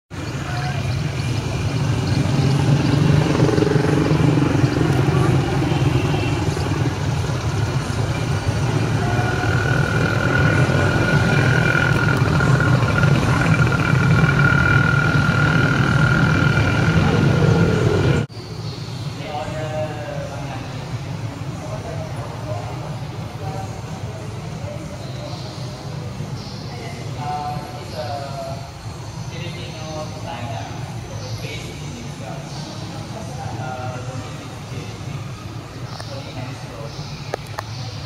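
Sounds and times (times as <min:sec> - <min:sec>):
indistinct voices: 0:00.2 - 0:18.3
vehicle engine running: 0:00.2 - 0:18.3
steady high whine: 0:00.2 - 0:38.0.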